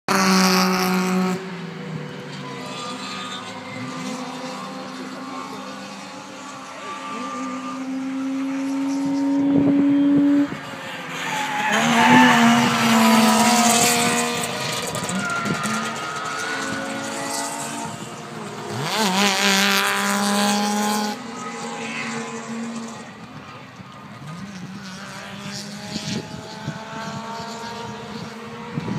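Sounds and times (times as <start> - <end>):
loud race car engine: 0.0 - 28.9
distant race car engines: 0.1 - 28.9
wind gusts on microphone: 25.9 - 28.9.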